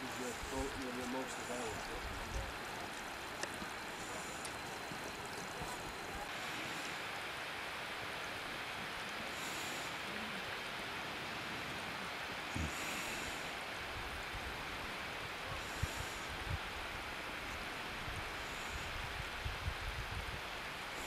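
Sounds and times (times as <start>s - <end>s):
wind gusts buffeting microphone: 0.0s - 6.4s, 13.8s - 21.0s
wind on microphone: 13.9s - 21.0s.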